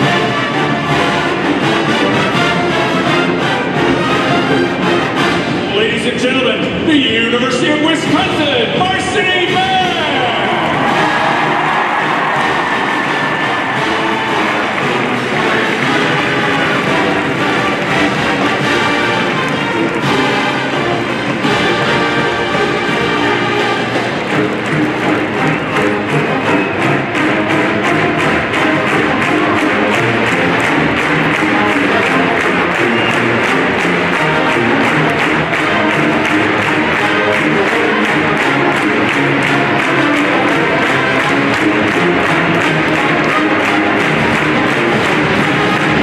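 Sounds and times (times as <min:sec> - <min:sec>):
brass band playing loudly: 0:00.0 - 0:46.0.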